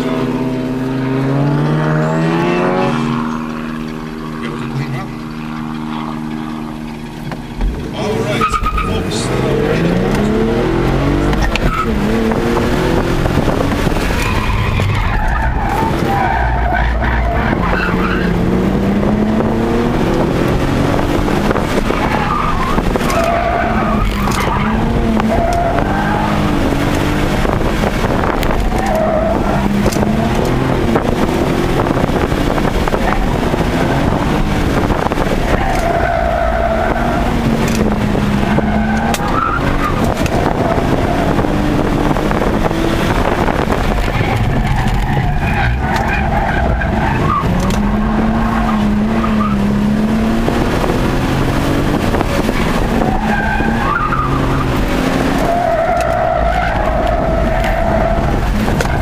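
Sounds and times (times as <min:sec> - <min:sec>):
car engine revving: 0:00.0 - 0:59.0
tyres squealing: 0:07.9 - 0:10.2, 0:21.8 - 0:26.8, 0:52.6 - 0:59.0.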